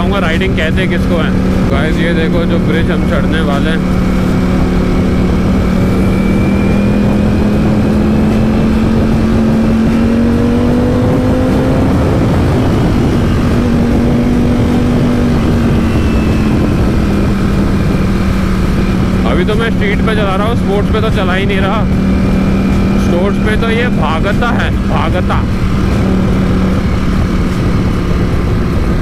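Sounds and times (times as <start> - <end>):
heavy wind rush: 0.0 - 29.0
motorcycle engine accelerating: 0.0 - 29.0.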